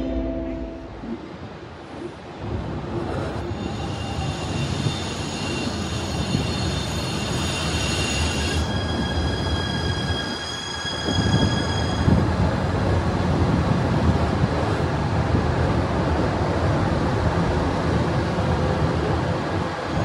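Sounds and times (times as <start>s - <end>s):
train wheels rumbling on rails: 1.2s - 20.0s
train high-pitched whine: 2.6s - 12.6s.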